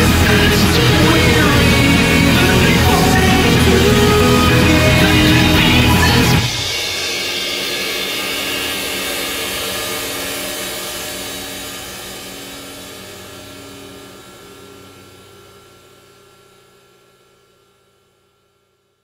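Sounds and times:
rock chord ringing out: 0.0s - 16.0s.

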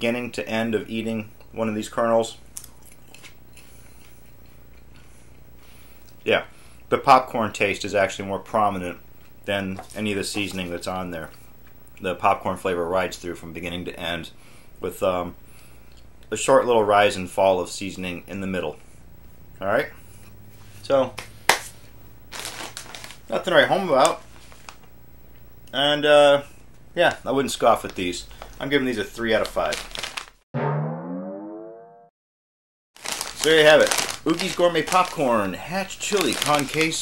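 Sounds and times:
chewing popcorn: 2.5s - 6.2s, 33.0s - 37.0s
snack bag rustling: 22.3s - 24.9s, 27.8s - 30.4s, 33.0s - 37.0s.

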